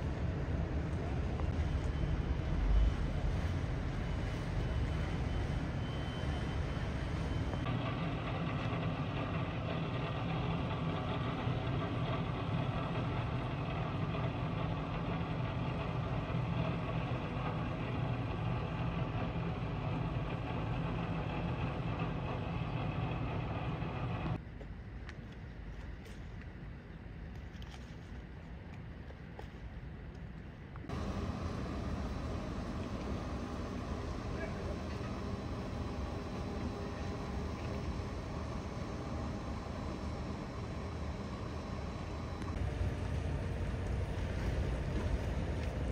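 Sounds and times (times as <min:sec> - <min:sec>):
boat engine rumble: 0:00.0 - 0:24.4, 0:30.9 - 0:45.9.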